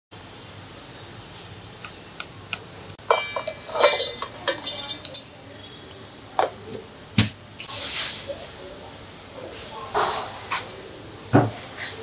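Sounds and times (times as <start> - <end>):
dough pieces clattering in metal jar: 3.0 - 5.4.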